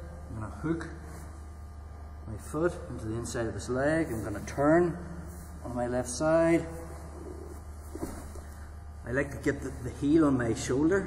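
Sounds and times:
low hum: 0.0 - 11.0
bodies shuffling on mats: 6.7 - 8.8.

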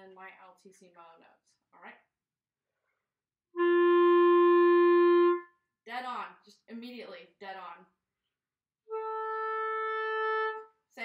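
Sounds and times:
clarinet sustained note: 3.6 - 5.4, 8.9 - 10.7.

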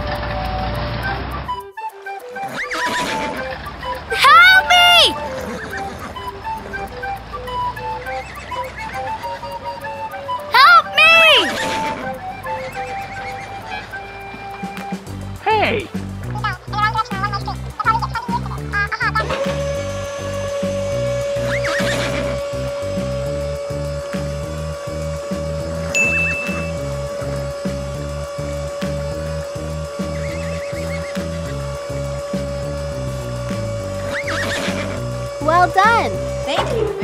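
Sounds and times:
cartoon music with steady beat: 0.0 - 37.0
horse whinnying: 2.4 - 6.1, 10.6 - 14.1, 21.4 - 22.4, 34.1 - 35.0
steady hum: 19.3 - 37.0.

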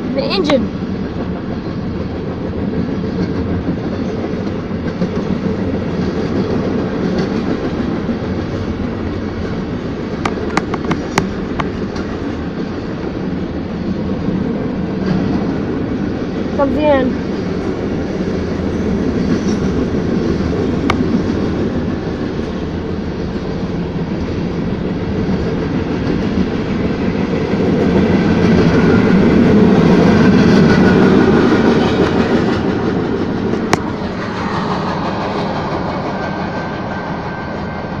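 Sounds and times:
train wheels rumbling on rails: 0.0 - 38.0.

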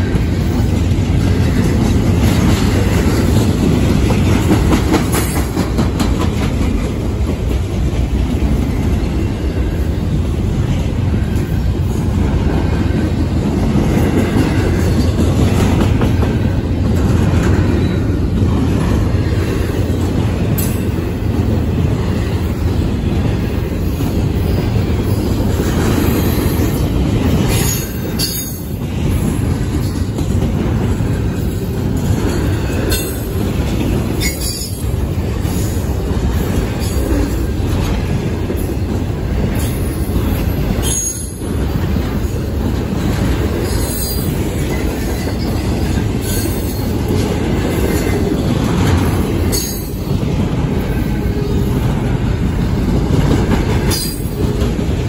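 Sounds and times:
train wheels rumbling on rail: 0.0 - 55.0.

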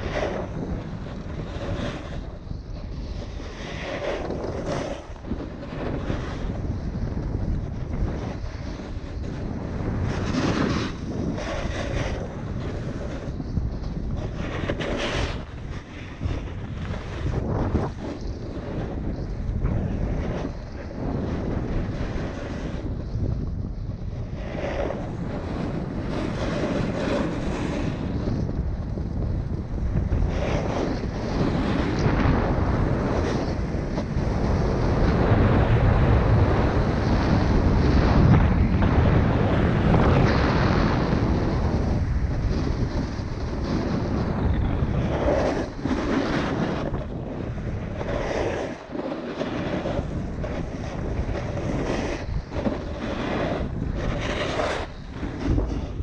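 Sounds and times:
edges scraping on snow: 0.0 - 7.0, 7.6 - 22.9, 24.3 - 28.5, 35.7 - 56.0
wind rushing over microphone: 0.0 - 56.0.

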